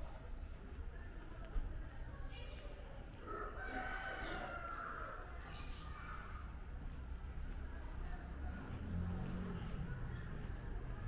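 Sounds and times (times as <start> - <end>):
rooster crowing: 3.3 - 5.2.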